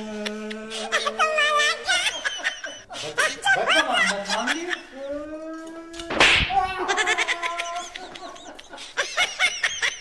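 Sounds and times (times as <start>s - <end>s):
man crying out: 5.0s - 8.1s.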